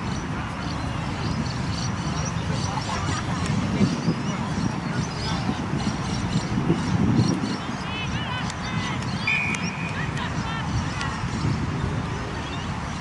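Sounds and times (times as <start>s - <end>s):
players calling out: 8.0s - 11.3s
whistle blast: 9.2s - 10.1s.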